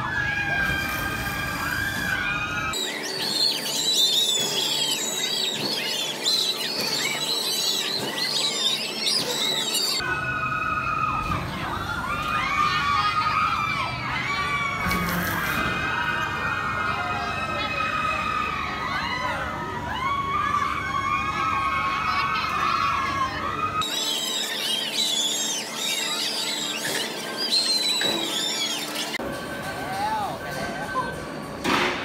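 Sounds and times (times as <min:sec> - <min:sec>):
riders screaming: 0:00.0 - 0:29.2.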